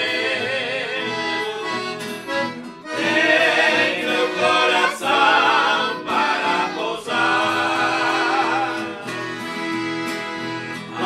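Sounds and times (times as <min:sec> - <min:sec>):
men singing a hymn in harmony: 0:00.0 - 0:02.1, 0:02.9 - 0:09.3
piano accordion: 0:00.0 - 0:11.0
strummed acoustic guitars: 0:00.0 - 0:11.0.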